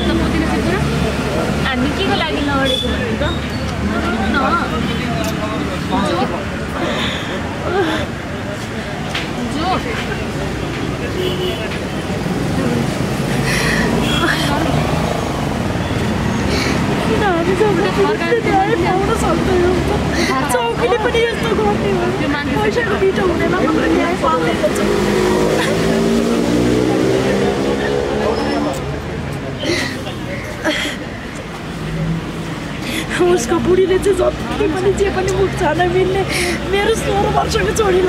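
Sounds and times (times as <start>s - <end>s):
vehicle engine rumbling: 0.0s - 38.0s
voices nearby: 0.0s - 38.0s
woman sobbing: 6.8s - 8.2s.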